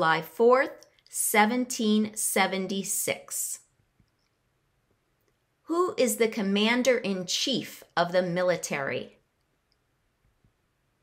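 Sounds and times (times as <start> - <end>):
woman speaking: 0.0 - 3.7, 5.6 - 9.2.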